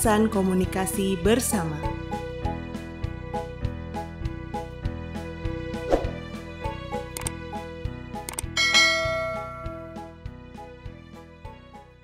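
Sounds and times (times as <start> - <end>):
mouse clicks: 7.2 - 7.4, 8.3 - 8.5
bright bell chime: 8.6 - 10.1.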